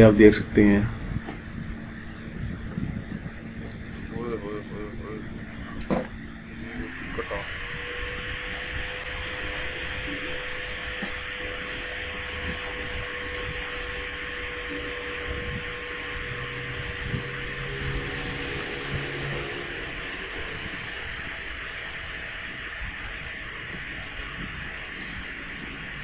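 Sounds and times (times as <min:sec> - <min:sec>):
faint hum: 0:00.0 - 0:26.0
steady hiss: 0:00.0 - 0:26.0.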